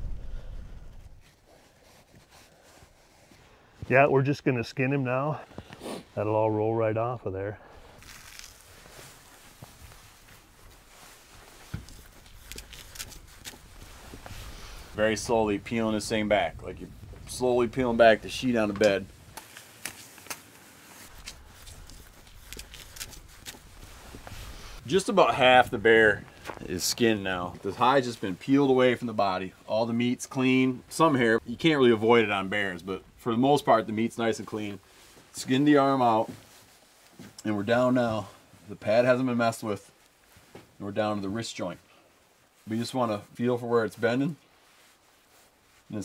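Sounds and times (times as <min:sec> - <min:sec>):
soft rustling: 0:00.0 - 0:04.1, 0:07.8 - 0:46.0
light hiss of fur: 0:07.9 - 0:32.7, 0:44.0 - 0:46.0
small clicks: 0:11.8 - 0:13.6.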